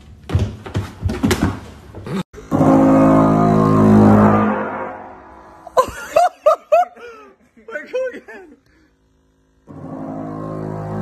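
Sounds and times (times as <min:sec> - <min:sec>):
massage gun buzzing on metal box: 0:08.7 - 0:11.0.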